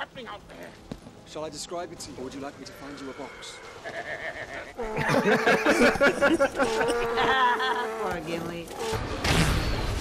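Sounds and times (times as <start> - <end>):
person laughing: 3.8 - 8.1.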